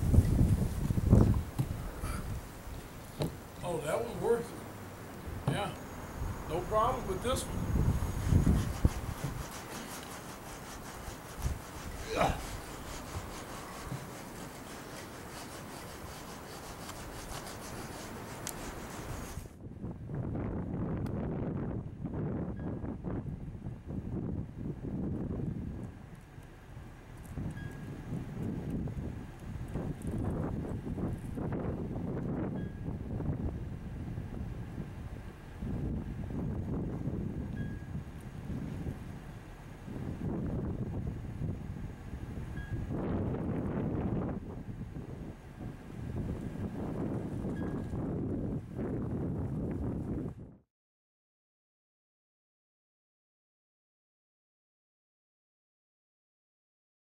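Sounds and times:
steady hiss: 0:00.0 - 0:19.5
wind buffeting microphone: 0:00.0 - 0:26.1, 0:26.7 - 0:50.6.

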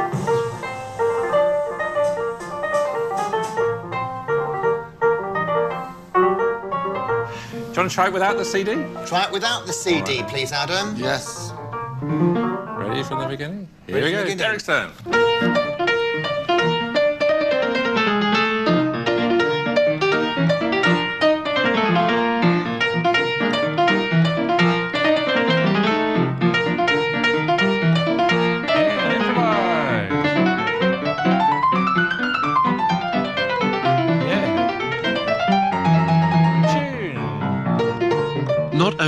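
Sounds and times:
fast jazz piano: 0:00.0 - 0:39.0.

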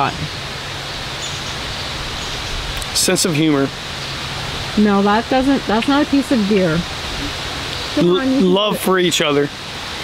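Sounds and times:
rushing outdoor background noise: 0:00.0 - 0:10.0.

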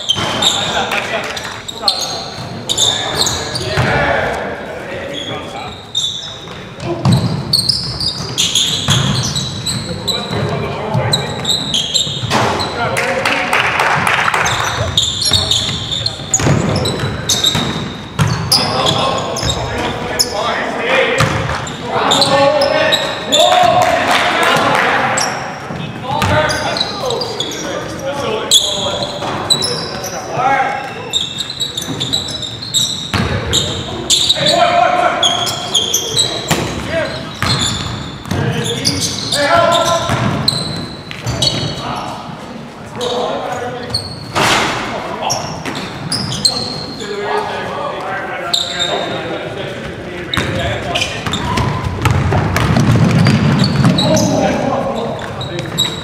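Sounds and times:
sneakers squeaking: 0:00.0 - 0:13.0, 0:14.0 - 0:56.0
players calling out: 0:00.0 - 0:56.0
ball bouncing on hardwood floor: 0:51.2 - 0:54.0.

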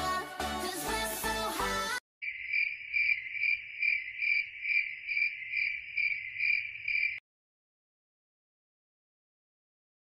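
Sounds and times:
crickets chirping: 0:02.2 - 0:07.2.

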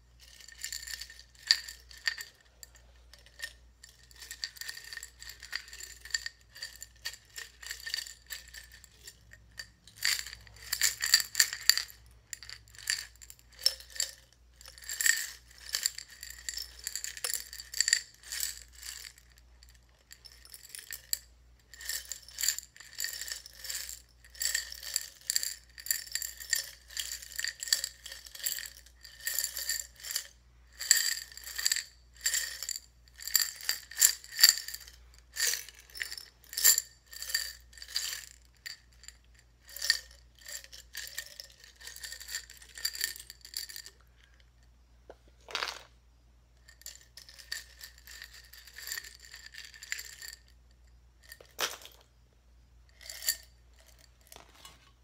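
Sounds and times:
buttons rattling in glass jar: 0:00.0 - 0:44.1, 0:46.6 - 0:50.5, 0:52.9 - 0:55.0.

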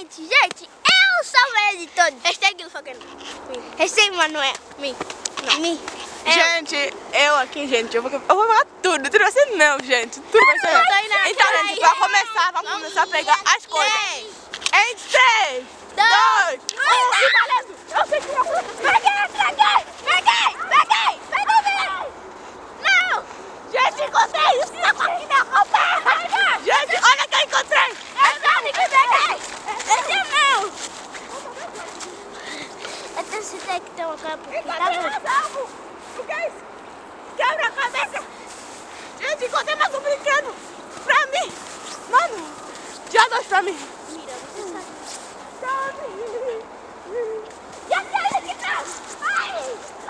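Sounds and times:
children shouting and squealing: 0:00.0 - 0:03.9, 0:10.2 - 0:36.7, 0:37.3 - 0:50.0
steady background hiss: 0:00.0 - 0:50.0.

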